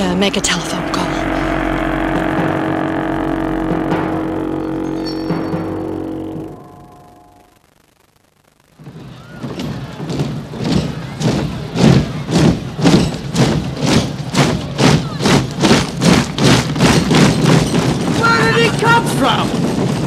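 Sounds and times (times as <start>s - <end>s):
rhythmic pounding beat: 0.0s - 7.2s, 8.8s - 20.0s.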